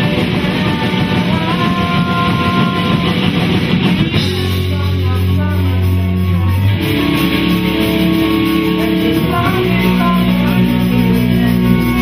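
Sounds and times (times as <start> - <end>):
distorted electric guitars: 0.0 - 12.0
live rock band playing: 0.0 - 12.0.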